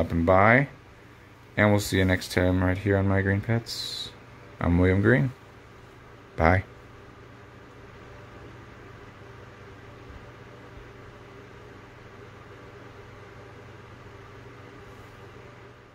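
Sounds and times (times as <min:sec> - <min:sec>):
fan humming and hissing: 0:00.0 - 0:15.9.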